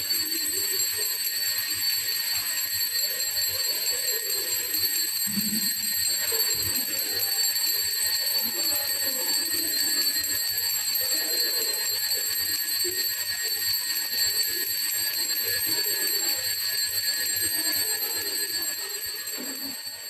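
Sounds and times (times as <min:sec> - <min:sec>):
altar bells ringing: 0:00.0 - 0:20.0.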